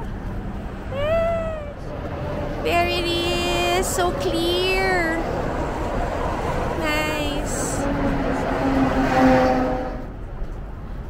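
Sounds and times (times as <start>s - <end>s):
truck passing on highway: 0.0s - 11.0s.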